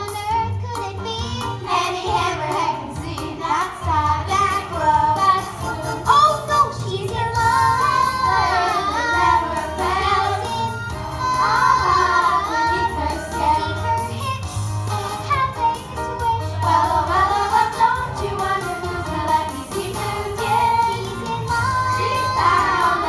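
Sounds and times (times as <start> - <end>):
children singing together: 0.0 - 6.4, 7.4 - 23.0
recorded accompaniment with bass line: 0.0 - 23.0.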